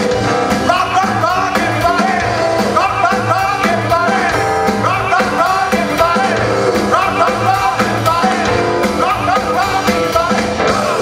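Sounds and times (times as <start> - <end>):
electric guitar: 0.0 - 11.0
upright double bass: 0.0 - 11.0
man singing: 0.3 - 11.0.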